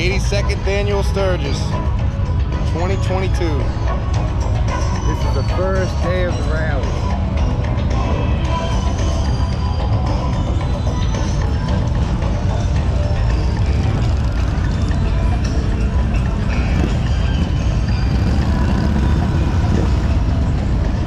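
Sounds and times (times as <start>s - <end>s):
motorcycle engines rumbling: 0.0s - 21.0s
music: 0.0s - 21.0s.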